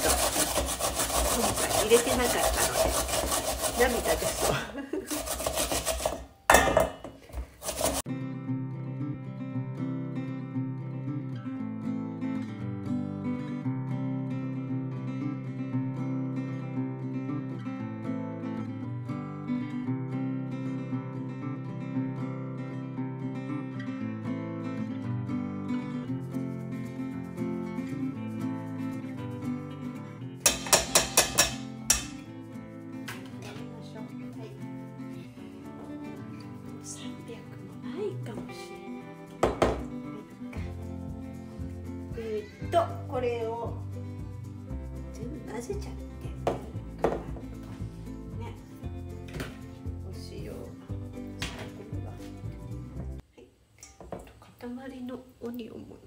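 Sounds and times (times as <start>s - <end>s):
onion rasping on grater: 0.0s - 6.4s, 7.4s - 8.1s
background music: 7.6s - 53.2s.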